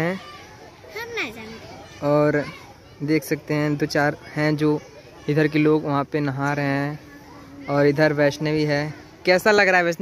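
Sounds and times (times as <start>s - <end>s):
faint outdoor background noise: 0.0s - 10.0s.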